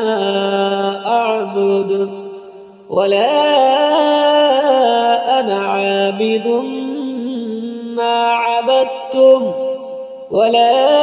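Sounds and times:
solo voice chanting: 0.0s - 11.0s.

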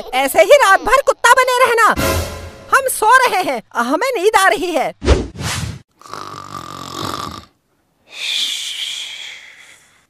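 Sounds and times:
cartoon snore: 6.0s - 7.5s.

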